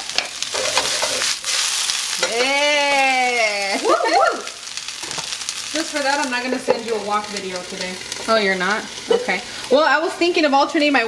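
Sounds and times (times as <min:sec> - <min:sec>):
vegetables sizzling in a wok: 0:00.0 - 0:11.0.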